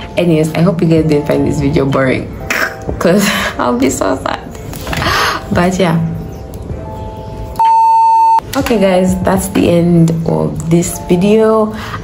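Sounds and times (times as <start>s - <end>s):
soft background music: 0.0s - 12.0s
loud steady test tone beep: 7.6s - 8.4s.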